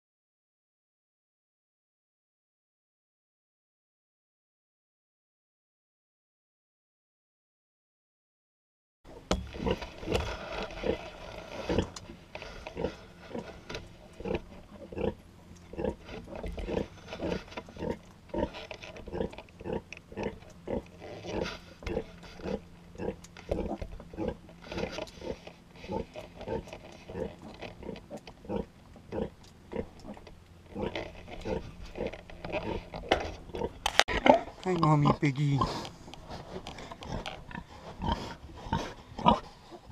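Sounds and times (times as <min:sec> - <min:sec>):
sow grunting: 0:09.6 - 0:35.9.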